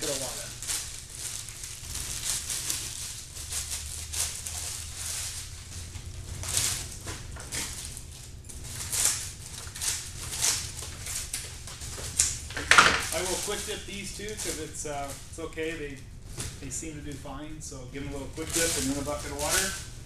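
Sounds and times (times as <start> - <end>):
plastic sleeves crinkling: 0.0 - 20.0
steady low hum: 0.0 - 20.0.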